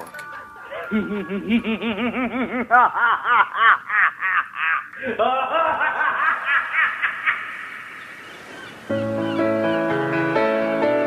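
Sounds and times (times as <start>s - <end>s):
high-pitched laughter: 0.2s - 7.8s.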